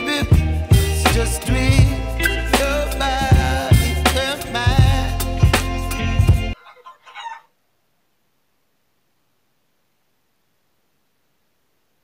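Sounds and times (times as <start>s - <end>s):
hen squawk: 6.6s - 7.5s.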